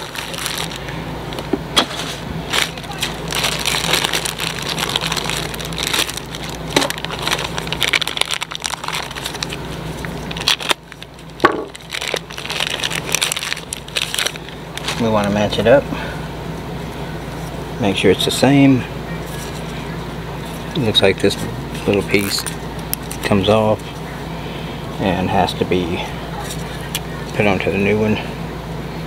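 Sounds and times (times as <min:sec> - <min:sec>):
plastic bag crinkling: 0:00.0 - 0:15.7, 0:19.2 - 0:19.8.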